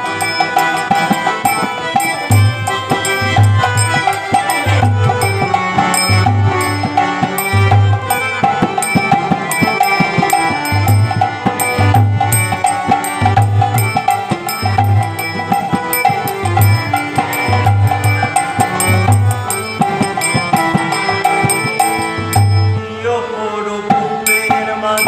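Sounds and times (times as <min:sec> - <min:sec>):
tabla strokes: 0:00.0 - 0:22.9
harmonium chords: 0:00.0 - 0:25.0.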